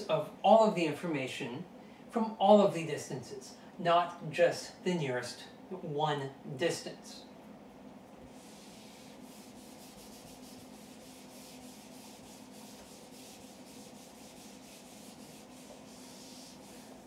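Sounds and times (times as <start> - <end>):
eraser rubbing on whiteboard: 8.3 - 17.0.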